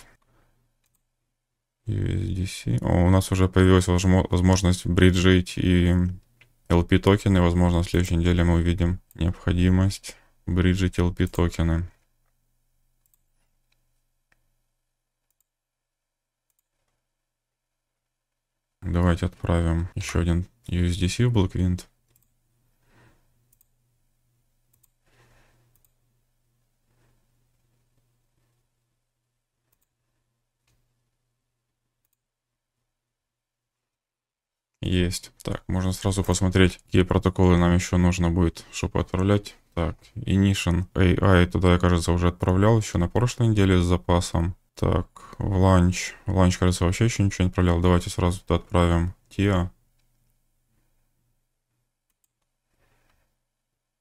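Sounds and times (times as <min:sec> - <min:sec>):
computer mouse clicks: 0:00.1 - 0:01.1, 0:13.0 - 0:14.5, 0:15.2 - 0:15.5, 0:16.5 - 0:17.0, 0:22.0 - 0:22.4, 0:23.5 - 0:23.8, 0:24.7 - 0:26.0, 0:29.7 - 0:30.0, 0:32.0 - 0:32.2, 0:52.1 - 0:52.5.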